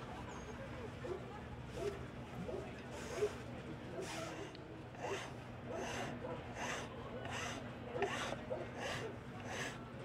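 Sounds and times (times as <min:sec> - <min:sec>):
hand tool scraping workpiece: 0:05.0 - 0:09.8.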